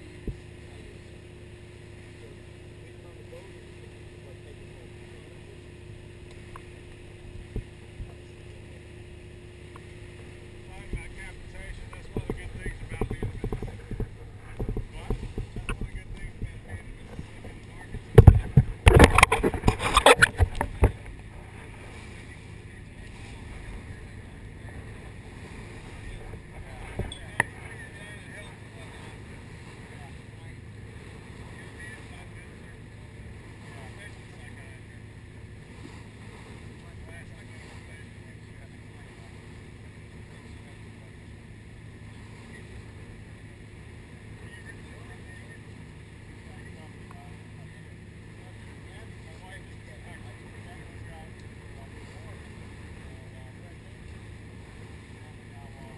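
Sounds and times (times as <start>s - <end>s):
faint voices: 0.0s - 55.9s
low steady hum: 0.0s - 55.9s
water noise: 0.0s - 55.9s
wind noise: 11.8s - 21.1s.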